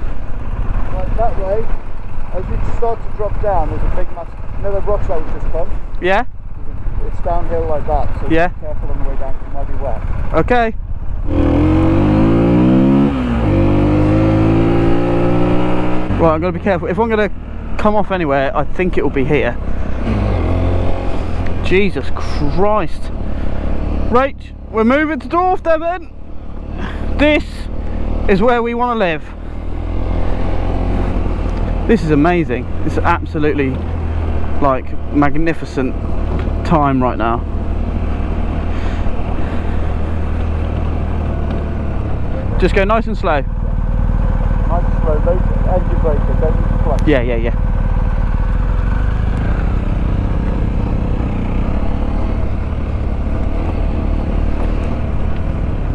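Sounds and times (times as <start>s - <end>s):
motorcycle engine pulling away: 11.2s - 18.4s, 26.1s - 55.9s
gravel noise: 16.2s - 55.9s.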